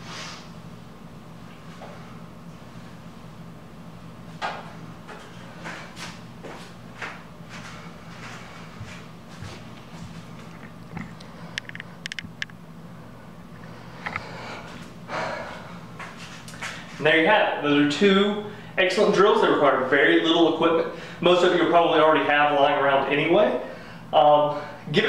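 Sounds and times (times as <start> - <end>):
steady low hum: 0.0 - 25.0
man breathing forcefully: 13.7 - 17.0.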